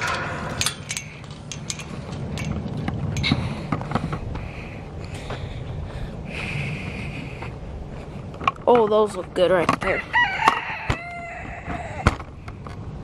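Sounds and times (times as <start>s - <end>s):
metal gate clicking and rattling: 0.0s - 3.4s.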